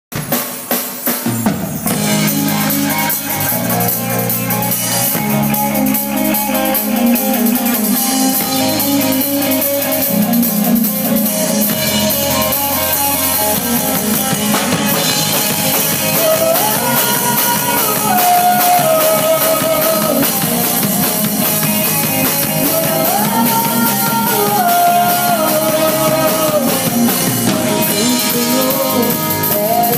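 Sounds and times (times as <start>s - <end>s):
live rock band playing: 0.1s - 29.9s.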